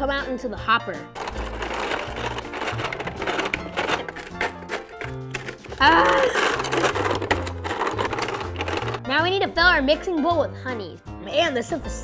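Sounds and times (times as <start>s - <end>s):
background music: 0.0s - 12.0s
toy cereal crusher clicking and grinding: 1.2s - 9.0s.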